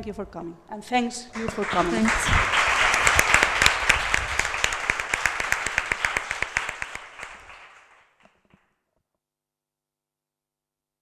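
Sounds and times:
small crowd applause: 1.3s - 8.6s.

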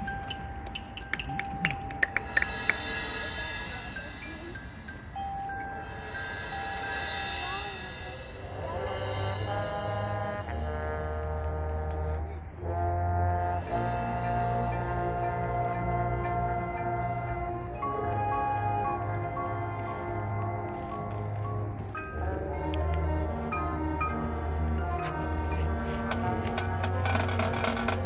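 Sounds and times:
mallet percussion held tones: 0.0s - 8.4s
brass chords: 7.9s - 28.0s.

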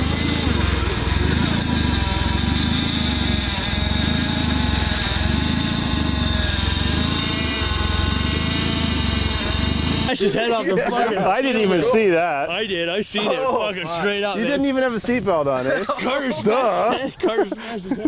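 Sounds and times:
car engine running: 0.0s - 10.6s.

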